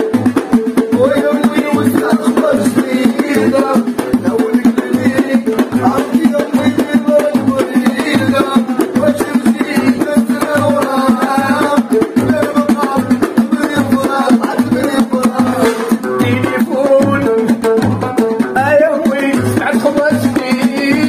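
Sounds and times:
frame drums and goblet drums: 0.0 - 21.0
men singing: 0.0 - 21.0.

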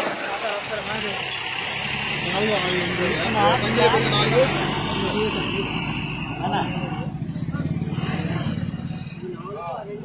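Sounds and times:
people talking indistinctly: 0.0 - 10.0
traffic and engine noise: 0.0 - 10.0.

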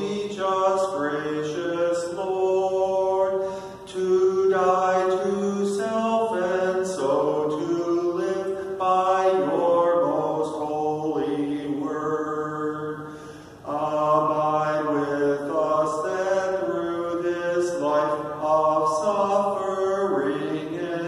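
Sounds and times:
man singing a hymn: 0.0 - 21.0.

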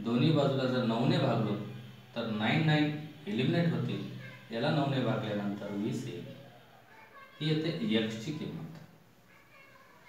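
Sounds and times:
man speaking: 0.0 - 6.5, 7.4 - 8.8.

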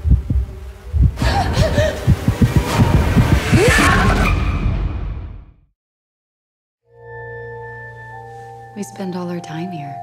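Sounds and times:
heartbeat-like thuds: 0.0 - 3.9.

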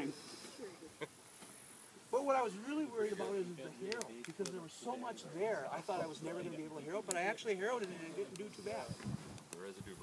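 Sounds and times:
faint voices: 0.0 - 10.0
steady high hiss: 0.0 - 10.0
quiet laugh: 0.5 - 1.4.

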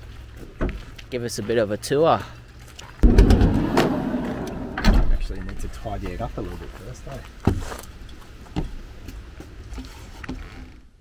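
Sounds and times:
sliding van door rumbling open: 3.0 - 5.2
door clunk: 3.0 - 5.3.

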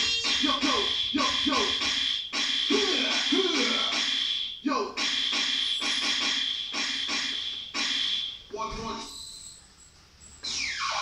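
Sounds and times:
electronic keyboard beat: 0.0 - 4.1.

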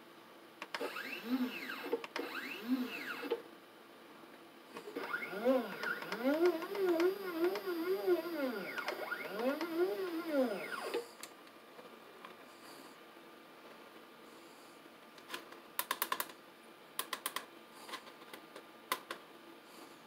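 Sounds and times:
stepper motors whining: 0.8 - 3.4, 4.8 - 11.2.

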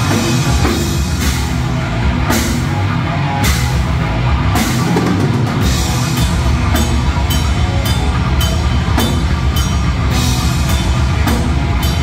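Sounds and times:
thrash metal band playing: 0.0 - 12.0.

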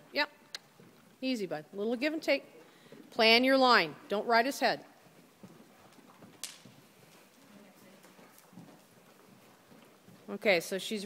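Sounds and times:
horse hoofbeats: 2.0 - 11.0.

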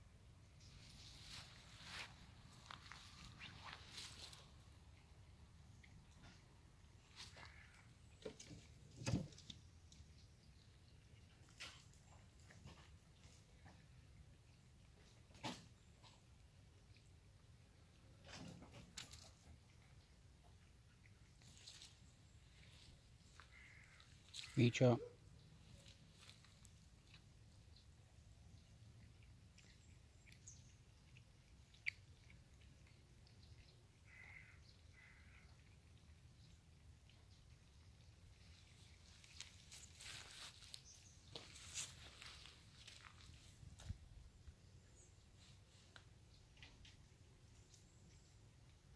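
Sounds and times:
cats chewing and licking food: 0.1 - 24.6, 25.2 - 48.9.

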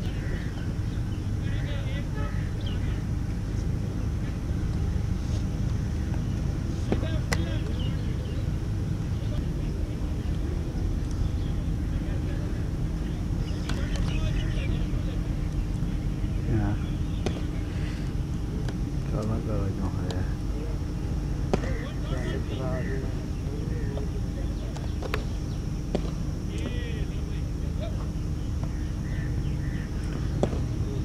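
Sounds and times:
distant voices: 0.0 - 31.0
cricket bat hitting ball: 21.5 - 21.8, 25.9 - 26.2, 30.3 - 30.8.

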